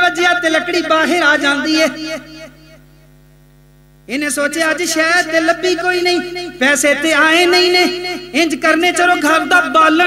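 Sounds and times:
man's voice: 0:00.0 - 0:02.8, 0:04.1 - 0:10.0
electrical mains hum: 0:00.0 - 0:10.0.

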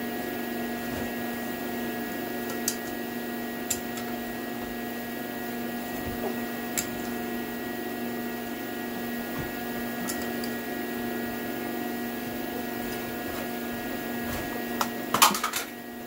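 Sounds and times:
steady tonal hum: 0:00.0 - 0:16.0.

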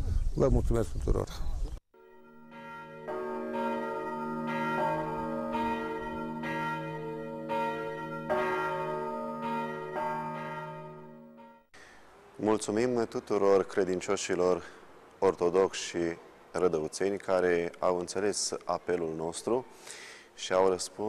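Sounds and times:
church bells ringing: 0:02.0 - 0:11.7.

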